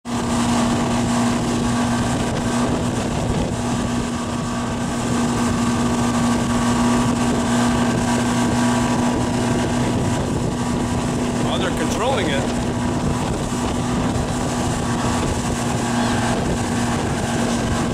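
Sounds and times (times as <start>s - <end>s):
motorboat engine running: 0.0s - 17.9s
rush of boat wake: 0.0s - 17.9s
wind buffeting microphone: 0.0s - 17.9s.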